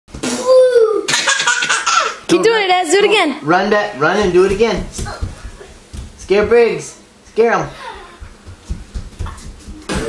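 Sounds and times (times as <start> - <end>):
baby laughing: 1.1 - 2.2.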